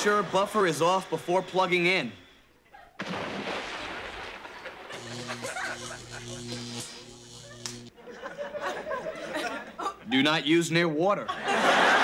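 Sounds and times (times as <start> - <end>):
floor buffer motor humming: 0.0 - 2.4, 4.0 - 7.9.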